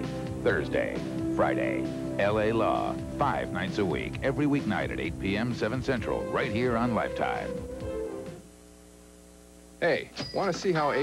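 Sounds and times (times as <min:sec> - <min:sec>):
music: 0:00.0 - 0:08.5
electrical mains hum: 0:00.0 - 0:11.0.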